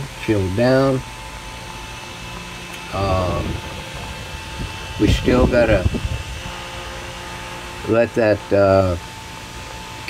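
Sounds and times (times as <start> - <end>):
workshop hum and hiss: 0.0 - 10.0.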